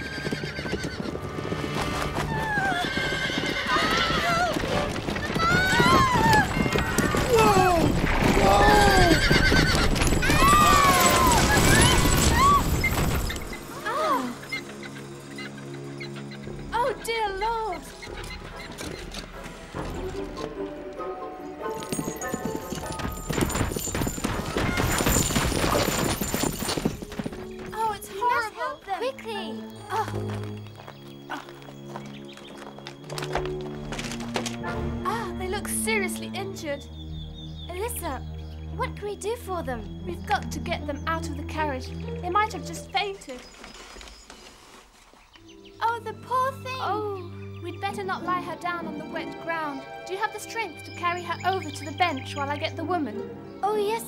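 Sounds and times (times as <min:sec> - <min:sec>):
horse whinnies: 0:00.0 - 0:01.3, 0:02.0 - 0:16.4
horse hoofbeats: 0:00.0 - 0:36.6
orchestral music with held notes: 0:13.4 - 0:23.4, 0:27.4 - 0:43.4, 0:45.4 - 0:54.0.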